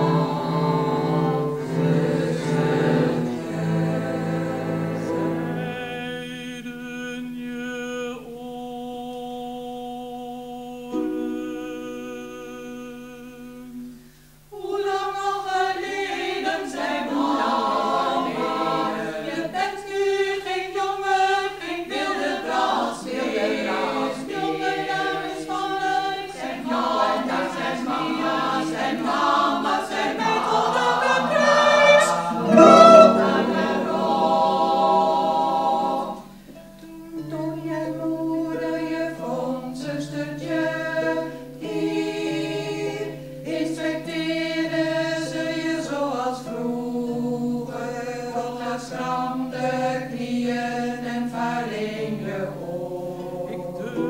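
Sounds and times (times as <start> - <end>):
low sustained cello note: 0.0 - 5.9, 31.1 - 36.2
women's choir singing: 0.0 - 13.9, 14.5 - 54.0.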